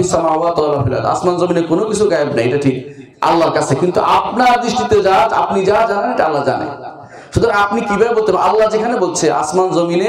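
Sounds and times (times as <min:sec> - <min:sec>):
man lecturing through a microphone: 0:00.0 - 0:10.0.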